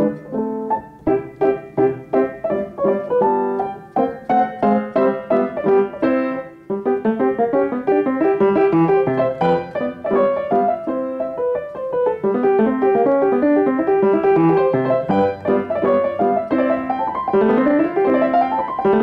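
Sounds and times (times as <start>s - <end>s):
solo piano playing fast notes: 0.0s - 19.0s.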